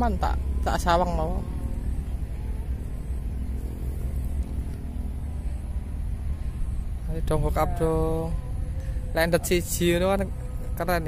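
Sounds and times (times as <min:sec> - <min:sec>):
faint hum: 0:00.0 - 0:11.0
low outdoor rumble: 0:00.0 - 0:11.0.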